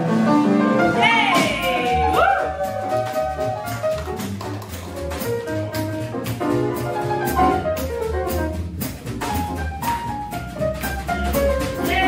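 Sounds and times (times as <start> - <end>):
piano solo: 0.0 - 12.0
upright double bass: 0.0 - 12.0.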